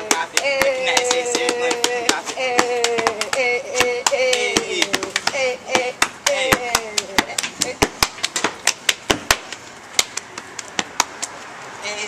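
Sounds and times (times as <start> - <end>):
sharp handclaps: 0.1 - 5.4, 6.0 - 11.3.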